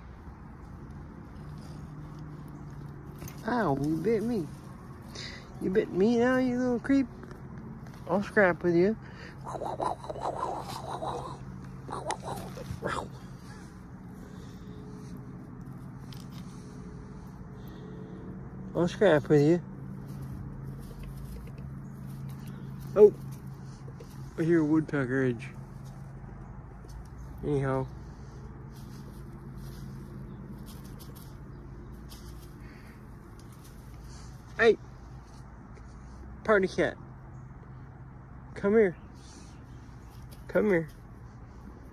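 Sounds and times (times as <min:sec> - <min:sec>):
steady low hum: 0:00.0 - 0:36.5
man calling out: 0:08.1 - 0:13.7
cat vocalizing: 0:09.4 - 0:13.5.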